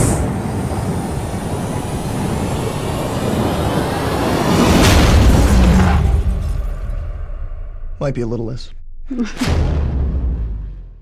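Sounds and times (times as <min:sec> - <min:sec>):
explosions and impacts rumble: 0:04.5 - 0:08.0, 0:09.2 - 0:11.0
film music: 0:07.0 - 0:11.0.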